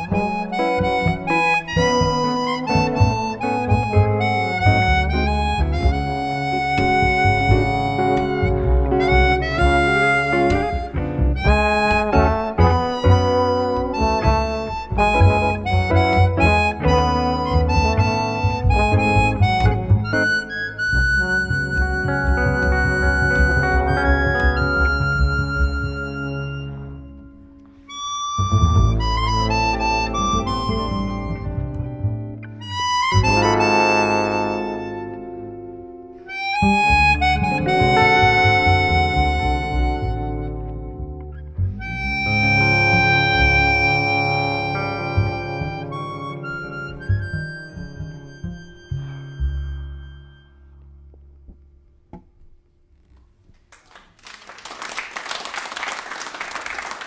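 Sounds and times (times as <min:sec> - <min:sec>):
electric guitar: 0:00.0 - 0:27.8
harmonica melody: 0:00.0 - 0:51.1
plucked double bass: 0:00.0 - 0:53.2.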